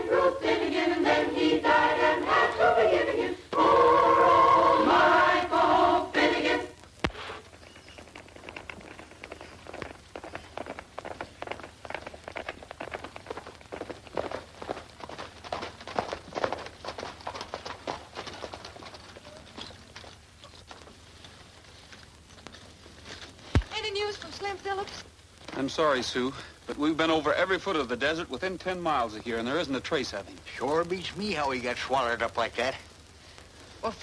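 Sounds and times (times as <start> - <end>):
boys singing together: 0.0 - 6.8
galloping horse hoofbeats: 7.4 - 21.6.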